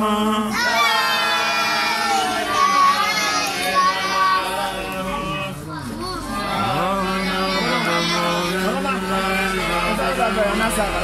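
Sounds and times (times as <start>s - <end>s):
children talking and calling: 0.5s - 11.0s.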